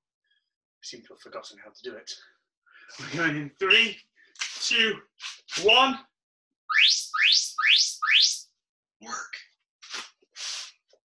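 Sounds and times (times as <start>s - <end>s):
rising electronic chirps: 6.7s - 8.4s.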